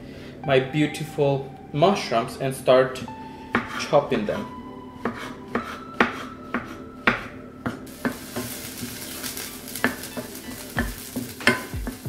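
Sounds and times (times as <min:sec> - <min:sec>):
knife chopping on wooden board: 0:03.6 - 0:03.8, 0:05.0 - 0:08.5
onions sizzling in oil: 0:07.8 - 0:12.0.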